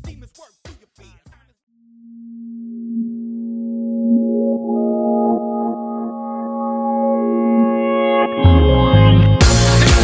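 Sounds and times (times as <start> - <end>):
rapping over hip-hop beat: 0.0 - 1.6
low synthesized tone: 1.8 - 9.6.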